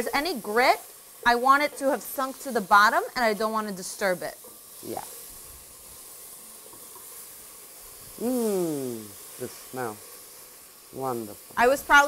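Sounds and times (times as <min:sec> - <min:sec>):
vegetables sizzling in hot oil: 0:00.0 - 0:12.0.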